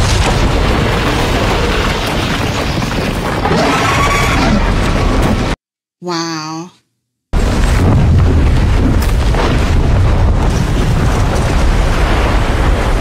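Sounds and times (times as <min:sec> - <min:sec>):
loud rumble of destruction: 0:00.0 - 0:05.6, 0:07.4 - 0:13.0.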